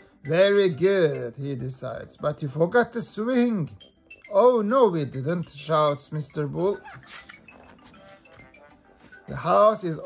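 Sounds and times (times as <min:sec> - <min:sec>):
faint background music: 0:00.0 - 0:10.0
book page turning: 0:06.9 - 0:09.2.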